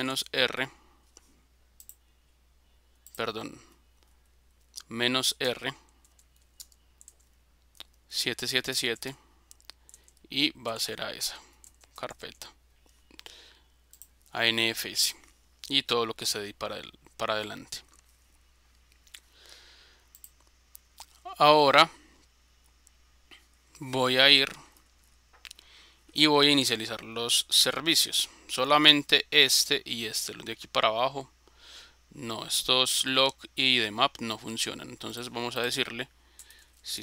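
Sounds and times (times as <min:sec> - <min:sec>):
steady low hum: 0:00.0 - 0:37.0
keyboard and mouse clicks: 0:01.8 - 0:02.0, 0:05.9 - 0:08.0, 0:09.0 - 0:10.3, 0:13.9 - 0:14.2, 0:20.1 - 0:21.2.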